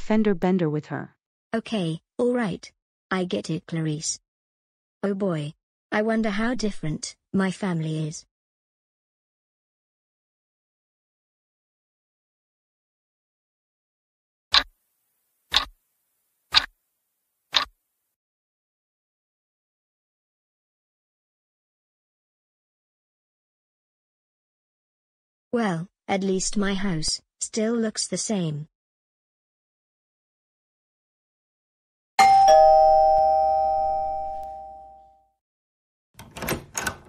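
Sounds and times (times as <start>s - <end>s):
clock ticking: 15.5s - 15.7s
two-tone doorbell chime: 32.2s - 35.3s.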